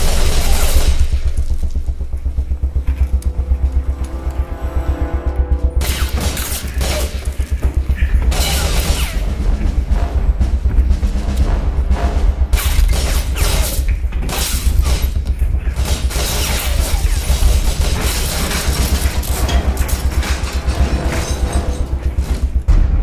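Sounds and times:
action film score: 0.0s - 23.0s
pulsing bass beat: 0.0s - 23.0s.

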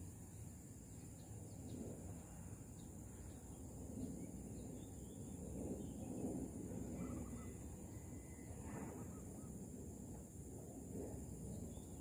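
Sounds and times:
faint bird calls: 7.0s - 9.6s.

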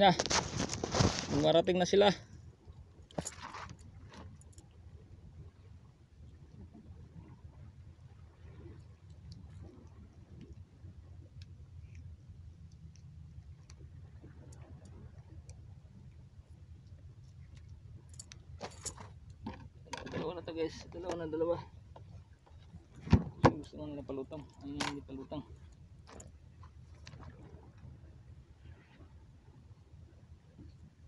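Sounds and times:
fish and tackle rustling: 0.0s - 2.0s, 3.0s - 4.7s, 16.3s - 27.8s
soft handling rustles: 0.1s - 1.6s.

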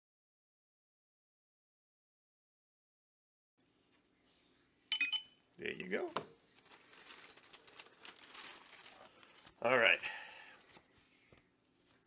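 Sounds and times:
sharp electronic beep: 4.9s - 5.4s
plastic bag crinkling: 6.5s - 9.7s.

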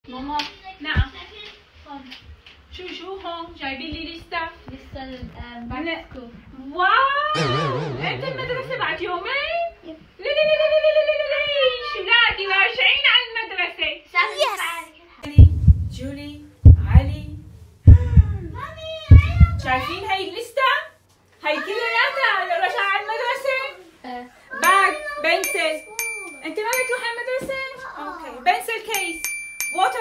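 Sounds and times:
loud sharp thump: 7.4s - 9.4s
high wavering ululation: 7.4s - 9.7s
low steady hum: 7.4s - 9.7s, 15.3s - 20.1s
child speaking: 14.2s - 15.0s, 24.5s - 25.5s, 27.7s - 28.4s
heartbeat thump: 15.3s - 20.1s.

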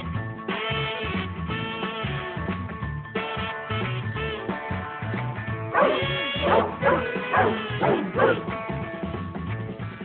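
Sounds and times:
background music: 0.0s - 10.0s
puppy barking and yelping: 5.7s - 8.5s.

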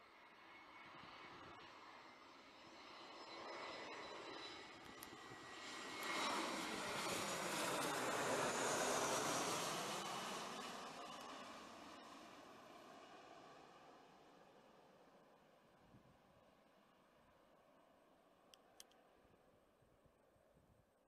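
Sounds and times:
jet airliner passing overhead: 0.0s - 18.1s.

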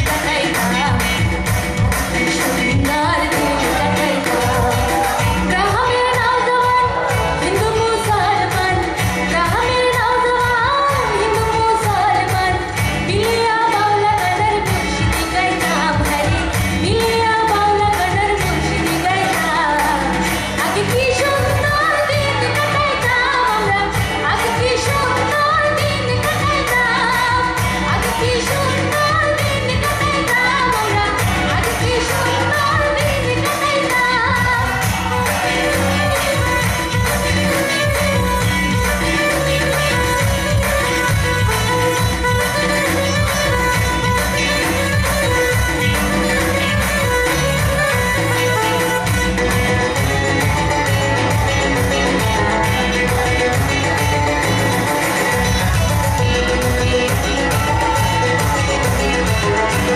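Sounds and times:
live band playing pop song: 0.0s - 59.9s
woman singing into a microphone: 0.0s - 59.9s.

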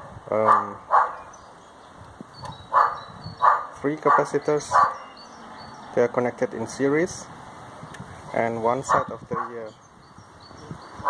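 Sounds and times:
dog barking: 0.5s - 1.3s, 2.7s - 5.1s, 8.9s - 9.6s.

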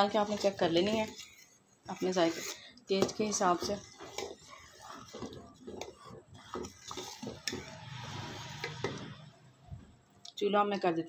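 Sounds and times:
metal ladle scraping steel pot: 0.0s - 9.9s.

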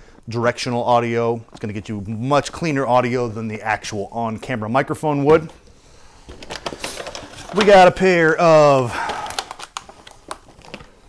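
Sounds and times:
plastic packaging clicks and crinkles: 6.2s - 11.0s.

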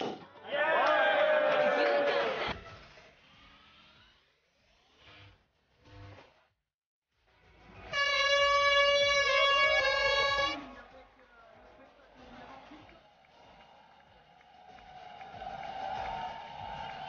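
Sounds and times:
air horn blast: 7.7s - 10.8s.

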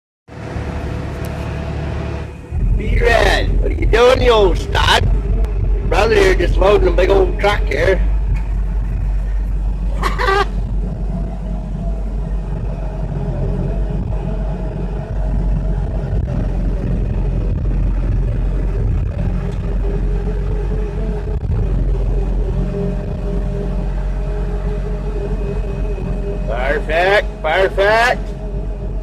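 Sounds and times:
excavator engine and hydraulics: 0.3s - 29.0s
hydraulic whine: 0.3s - 29.0s.

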